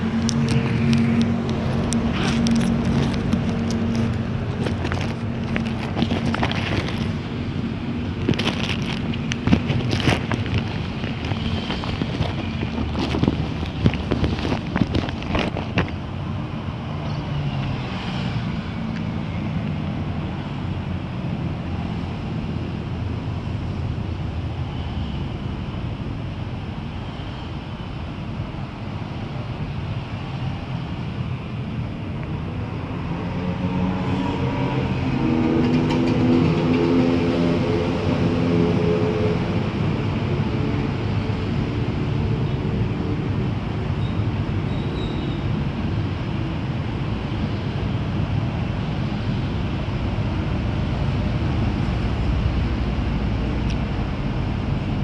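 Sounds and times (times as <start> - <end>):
low engine hum: 0.0 - 55.0.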